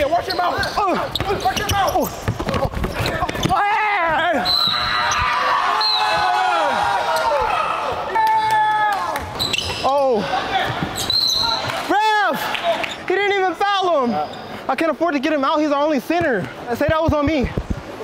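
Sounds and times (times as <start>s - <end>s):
sneakers squeaking: 0.0s - 7.5s, 9.2s - 11.9s, 12.8s - 13.1s, 14.0s - 14.6s
basketball bouncing: 0.9s - 3.6s.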